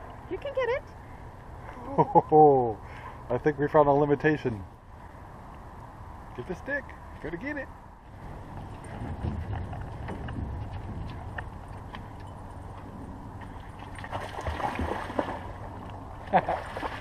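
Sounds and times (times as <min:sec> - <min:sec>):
person laughing: 0:01.7 - 0:02.5, 0:16.3 - 0:16.7
water splashing: 0:13.4 - 0:17.0.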